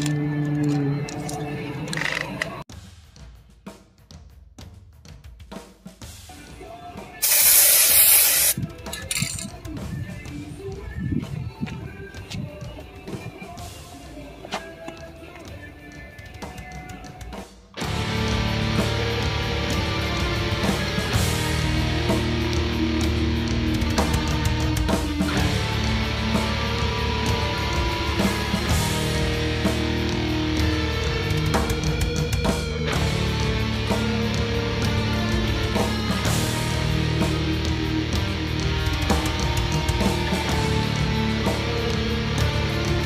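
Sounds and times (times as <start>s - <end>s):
aerosol spray can hiss: 7.2s - 8.6s
heavy rock music: 12.7s - 43.0s.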